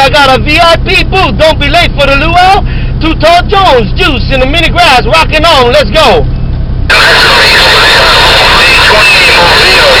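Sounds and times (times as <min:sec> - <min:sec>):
distorted radio static: 0:06.9 - 0:10.0
garbled radio voices: 0:06.9 - 0:10.0.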